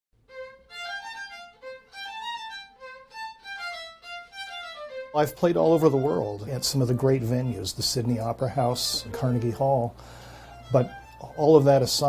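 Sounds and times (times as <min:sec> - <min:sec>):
solo violin melody: 0:00.2 - 0:12.0.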